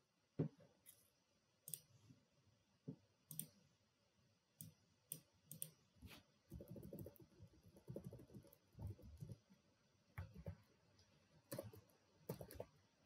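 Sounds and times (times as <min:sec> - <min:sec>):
computer mouse clicks: 0:01.7 - 0:01.9, 0:03.3 - 0:03.6, 0:04.6 - 0:05.8.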